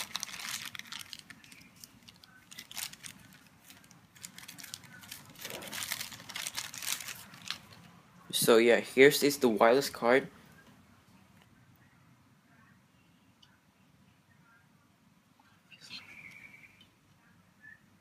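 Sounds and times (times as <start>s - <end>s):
plastic bag crinkling: 0.0s - 7.9s.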